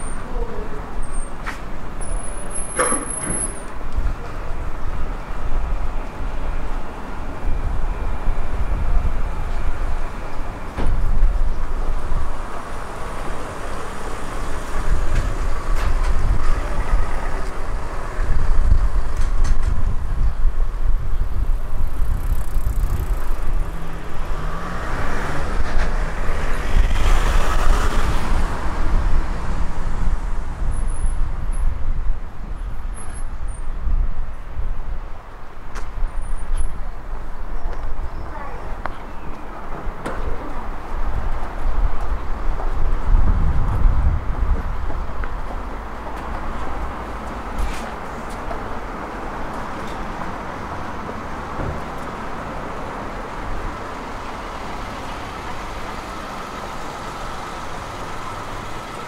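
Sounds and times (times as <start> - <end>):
road traffic rumble: 0.0 - 59.0
vehicle passing: 21.8 - 30.6.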